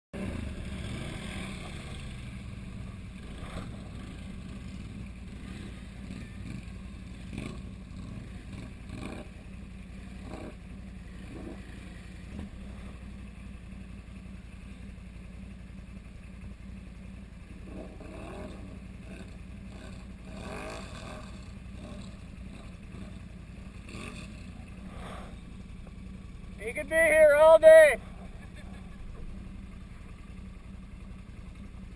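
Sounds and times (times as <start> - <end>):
atv engine idling: 0.2 - 31.9
distant atv engines revving: 0.2 - 31.9.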